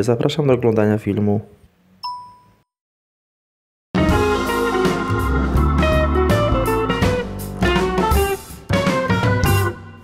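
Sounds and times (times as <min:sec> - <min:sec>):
bell-like ding: 0:02.0 - 0:02.7
guitar music: 0:04.0 - 0:10.0.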